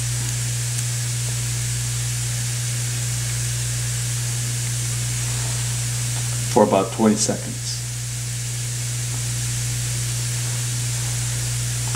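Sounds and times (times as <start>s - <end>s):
low electrical hum: 0.0s - 11.9s
high hiss: 2.5s - 11.9s.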